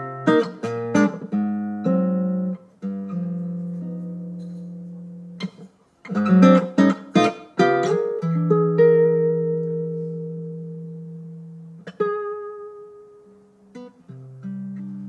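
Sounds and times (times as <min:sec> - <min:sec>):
acoustic guitar plucking: 0:00.0 - 0:15.0.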